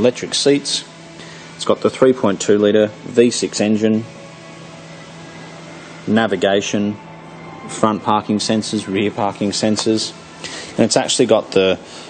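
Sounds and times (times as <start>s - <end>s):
steady background hum and hiss: 0.0s - 12.0s.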